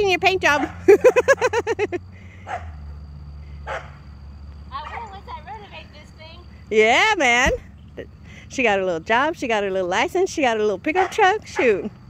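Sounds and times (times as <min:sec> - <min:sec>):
truck engine idling: 0:00.0 - 0:12.0
woman laughing: 0:00.8 - 0:02.0.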